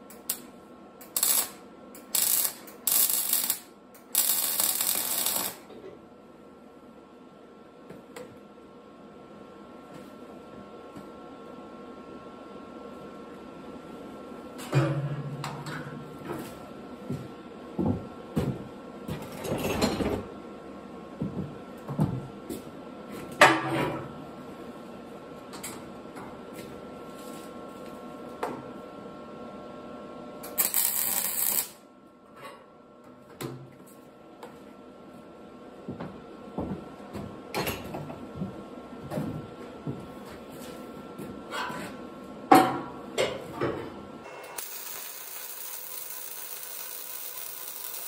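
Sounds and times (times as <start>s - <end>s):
welding arc crackling: 0.1s - 5.7s, 30.5s - 31.8s, 44.5s - 48.0s.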